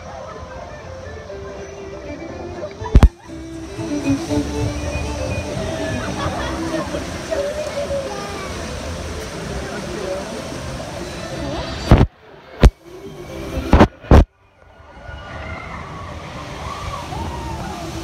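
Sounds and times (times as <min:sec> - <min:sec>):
background music: 0:00.0 - 0:18.0
water rushing and sloshing: 0:00.0 - 0:18.0
voices in background: 0:05.5 - 0:14.3.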